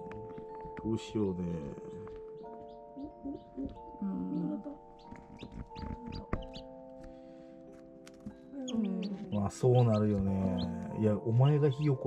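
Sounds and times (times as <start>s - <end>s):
chicks peeping: 0.0s - 7.1s, 8.1s - 12.0s.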